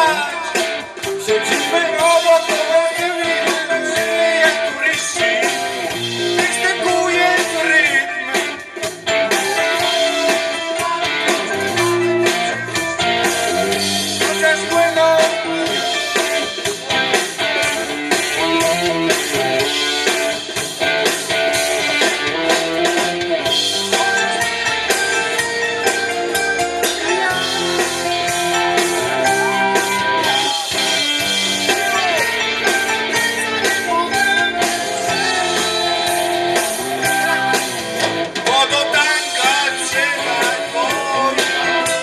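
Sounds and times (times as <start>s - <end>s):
man singing: 0.0s - 12.7s, 13.5s - 17.0s, 26.8s - 37.8s, 38.4s - 42.0s
live rock band playing: 0.0s - 42.0s.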